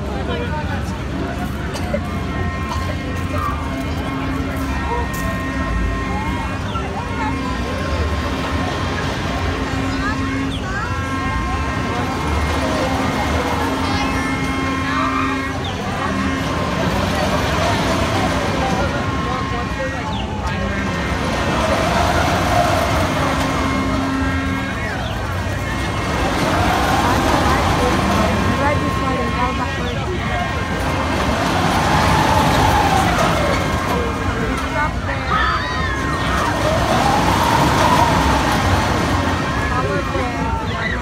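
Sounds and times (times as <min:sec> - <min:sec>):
crowd chatter: 0:00.0 - 0:41.0
ride mechanical whine: 0:00.0 - 0:41.0.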